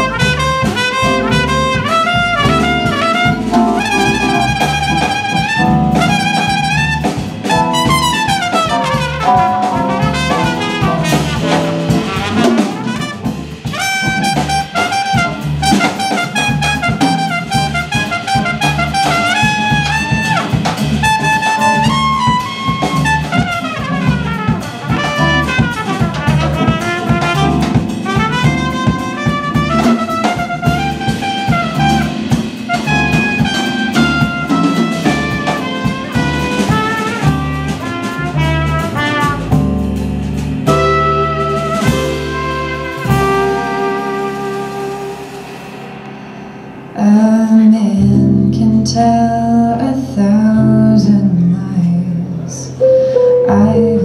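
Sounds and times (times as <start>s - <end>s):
upright bass: 0.0s - 45.7s, 47.0s - 54.0s
trumpet melody: 0.0s - 49.2s
drums: 0.0s - 51.1s.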